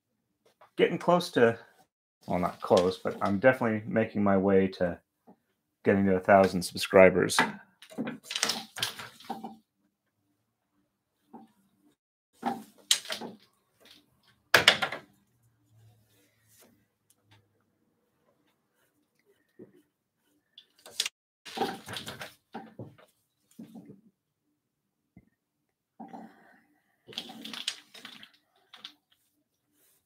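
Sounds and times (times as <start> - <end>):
wooden sword handled in threads: 7.8 - 9.6, 12.4 - 14.4, 20.6 - 23.8, 27.1 - 30.0.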